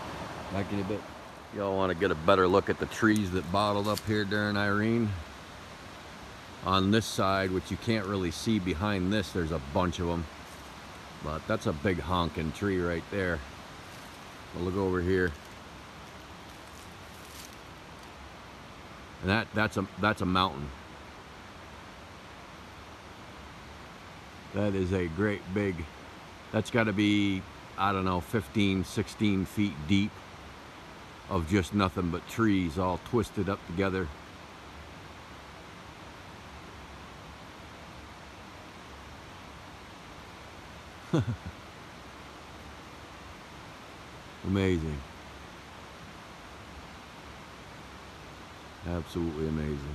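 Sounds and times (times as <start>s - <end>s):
faint rustle: 0.0s - 20.0s
outdoor background hiss: 0.0s - 49.9s
river water rushing: 0.0s - 49.9s.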